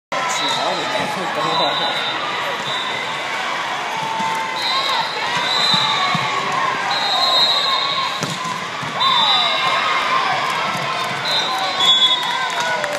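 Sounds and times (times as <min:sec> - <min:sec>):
volleyball being struck: 0:08.1 - 0:09.0.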